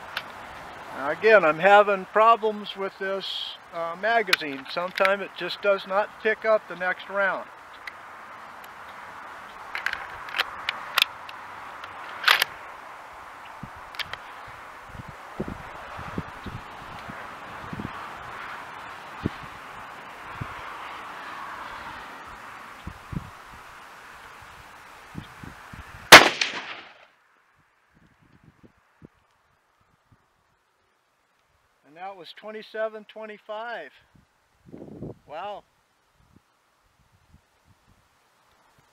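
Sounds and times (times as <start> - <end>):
rifle bolt metallic clicks: 9.8 - 12.5, 26.1 - 27.0
loud rifle shot: 26.1 - 27.1.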